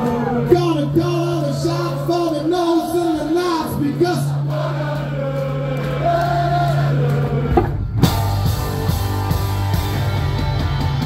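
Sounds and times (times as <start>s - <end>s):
rock band with drums: 4.2s - 11.0s
guitar and bass chord: 7.5s - 11.0s.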